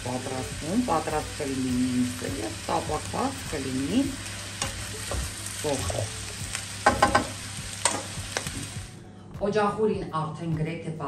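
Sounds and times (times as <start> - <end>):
food sizzling in frying pan: 0.0 - 9.0.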